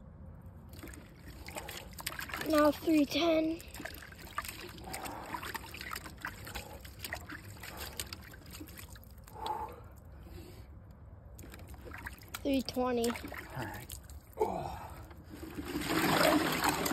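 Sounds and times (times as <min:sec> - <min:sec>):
water trickling and splashing in bathtub: 0:00.7 - 0:09.4, 0:11.4 - 0:14.3, 0:15.0 - 0:16.9
water dripping: 0:11.4 - 0:15.2.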